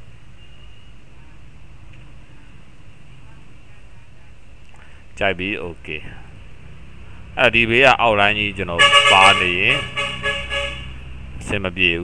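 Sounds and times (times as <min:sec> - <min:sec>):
steady low hum: 0:01.0 - 0:12.0
man speaking: 0:05.2 - 0:06.3, 0:07.4 - 0:10.5, 0:11.4 - 0:12.0.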